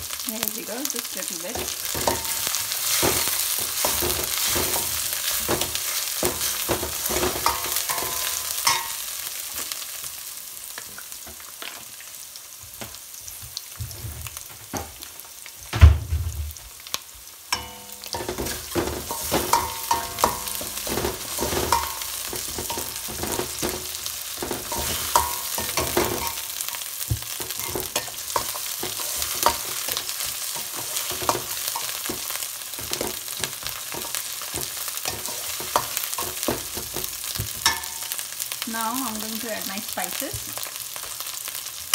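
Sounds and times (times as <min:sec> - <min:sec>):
food sizzling in hot oil: 0:00.0 - 0:41.9
ladle scraping and clinking pan: 0:01.6 - 0:09.0, 0:17.6 - 0:26.5
heavy thump: 0:15.7 - 0:16.6.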